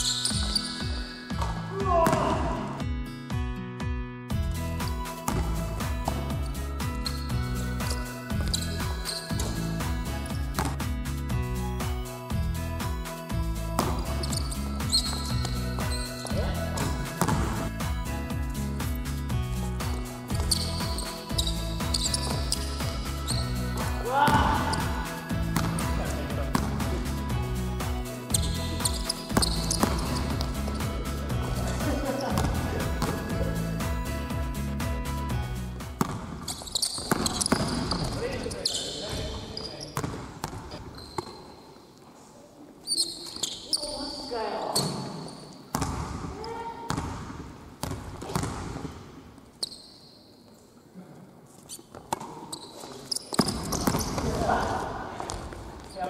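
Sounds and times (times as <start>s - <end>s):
sneakers squeaking: 0.0s - 2.6s, 4.8s - 11.4s, 13.7s - 18.0s, 18.8s - 34.0s, 35.8s - 50.8s, 51.5s - 56.0s
background music: 0.0s - 39.4s
basketball bouncing on wood floor: 0.2s - 2.5s, 10.6s - 10.8s, 13.8s - 17.6s, 28.4s - 30.8s, 36.0s - 38.2s, 40.0s - 41.4s, 45.7s - 46.3s, 46.9s - 48.9s, 53.4s - 54.4s.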